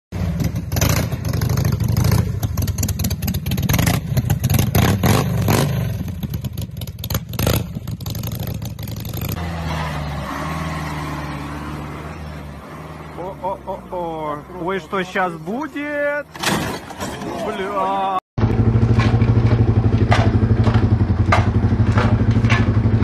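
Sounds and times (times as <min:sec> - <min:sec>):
engine revving with clattering knocks: 0:00.1 - 0:12.7, 0:18.4 - 0:23.0.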